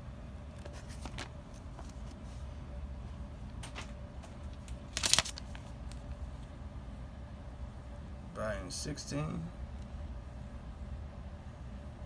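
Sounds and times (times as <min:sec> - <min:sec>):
low steady hum: 0:00.0 - 0:12.0
bagged comics being handled: 0:00.5 - 0:02.4, 0:03.6 - 0:06.0
plastic rustle: 0:04.5 - 0:06.0.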